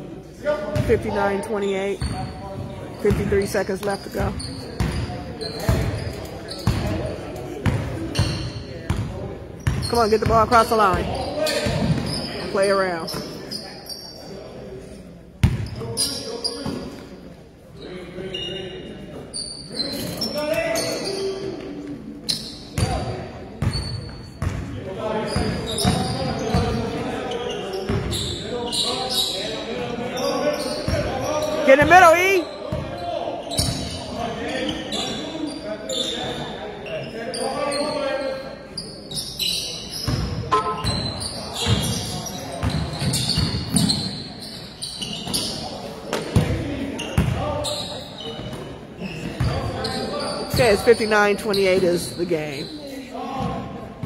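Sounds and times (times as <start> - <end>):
basketball bouncing on gym floor: 3.1 - 5.1.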